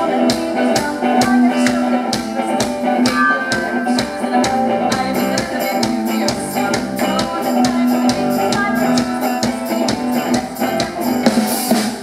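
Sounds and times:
bass guitar: 0.0 - 12.0
electric guitar: 0.0 - 12.0
drum beat: 0.1 - 12.0.

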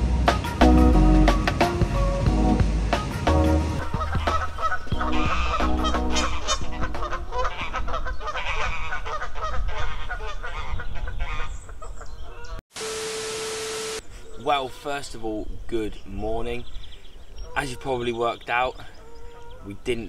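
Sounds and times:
background music: 0.0 - 7.4
geese honking: 3.7 - 12.6
steady hum with hiss: 12.8 - 14.1.

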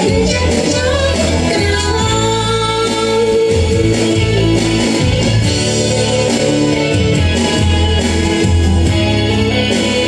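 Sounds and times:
instrumental backing track with strummed guitar: 0.0 - 10.0.

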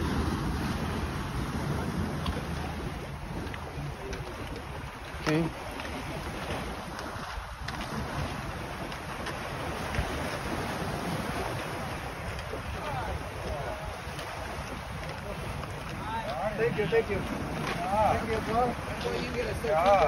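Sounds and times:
waves washing against rocks: 0.0 - 20.0
wind on microphone: 0.0 - 20.0.

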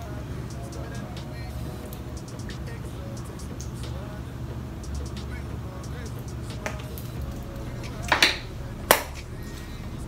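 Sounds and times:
faint music: 0.0 - 10.0
steady low rumble: 0.0 - 10.0.

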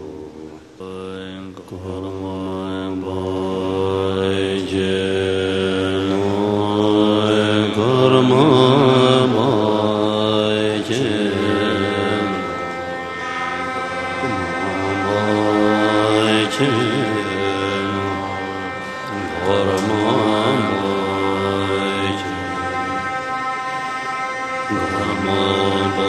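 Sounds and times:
low voices chanting: 0.0 - 26.0.

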